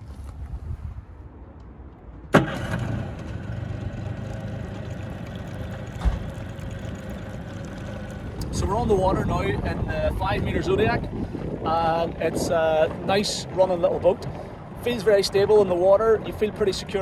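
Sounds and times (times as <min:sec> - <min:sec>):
outboard motor running: 0:02.4 - 0:10.2
short low thump: 0:05.8 - 0:06.5.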